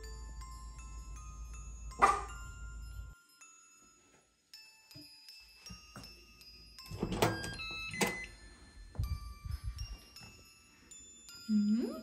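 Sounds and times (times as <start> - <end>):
door handle and latch clicks: 6.9 - 8.2.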